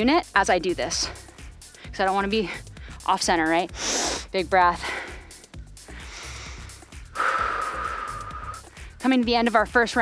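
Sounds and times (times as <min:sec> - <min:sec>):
background music with low beat: 0:00.0 - 0:10.0
woman breathing in and out: 0:01.1 - 0:03.1, 0:03.7 - 0:09.0.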